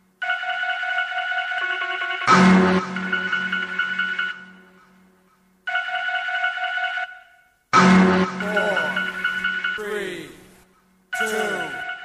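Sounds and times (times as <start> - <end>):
steady electronic tone: 0.8 - 4.8, 7.8 - 10.4.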